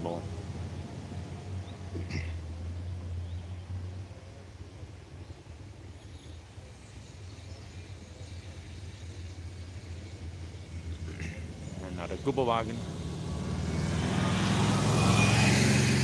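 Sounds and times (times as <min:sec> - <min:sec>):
vehicle engine rumble: 0:00.0 - 0:16.0.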